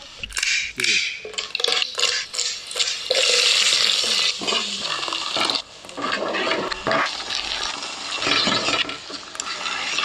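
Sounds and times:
masala sizzling in a pot: 0.0 - 10.0
wooden spoon stirring: 1.3 - 10.0.

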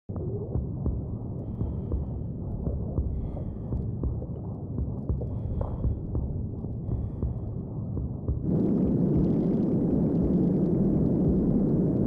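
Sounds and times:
low rumbling drone: 0.1 - 12.0.

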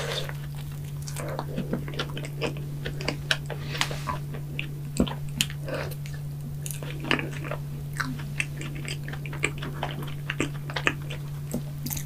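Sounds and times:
chewing mouth sounds: 0.0 - 12.0
steady low hum: 0.0 - 12.0.

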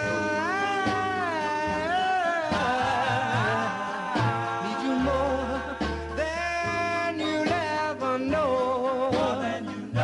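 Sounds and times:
soft band backing: 0.0 - 10.0.

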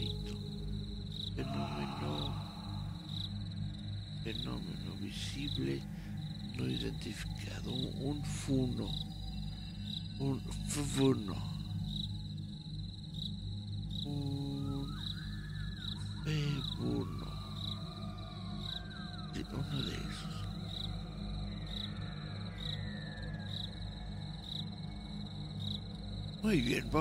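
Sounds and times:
wavering gliding calls: 0.0 - 3.4, 14.1 - 23.9
low drone: 0.0 - 11.8, 14.0 - 24.2
cricket trill: 0.0 - 27.0.

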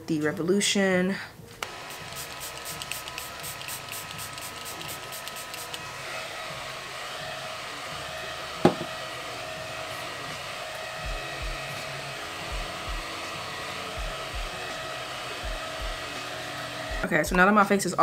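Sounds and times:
handheld fan whirring: 1.6 - 18.0.

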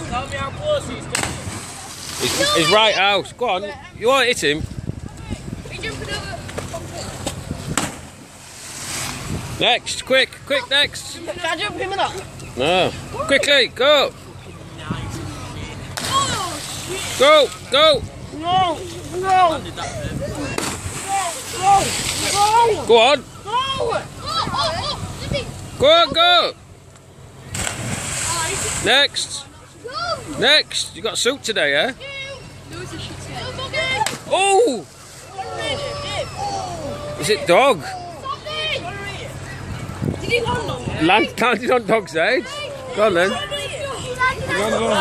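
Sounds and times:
hissing spray and churned water: 1.2 - 3.3, 6.9 - 11.1, 15.9 - 17.9, 20.4 - 24.2, 27.5 - 31.3.

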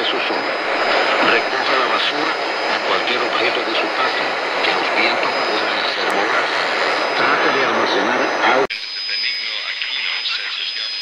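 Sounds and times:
faint radio voice: 0.0 - 11.0
radio static and hiss: 0.0 - 11.0.

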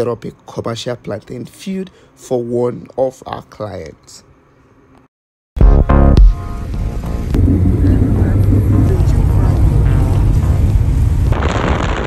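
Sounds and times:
car engine and road rumble: 6.2 - 11.6.

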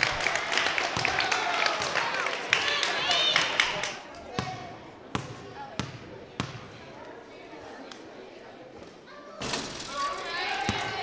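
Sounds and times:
crowd chatter: 0.0 - 11.0
basketball bouncing on gym floor: 4.4 - 6.8.

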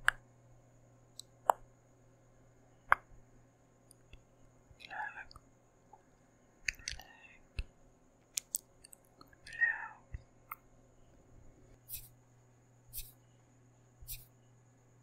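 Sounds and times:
person whispering: 4.8 - 5.4, 6.7 - 7.5, 9.4 - 10.2
wet mouth clicks: 6.7 - 7.1.

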